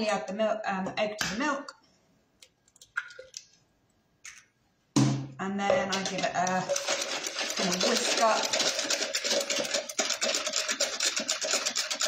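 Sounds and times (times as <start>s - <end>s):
whisk rattling in plastic jug: 5.8s - 12.0s.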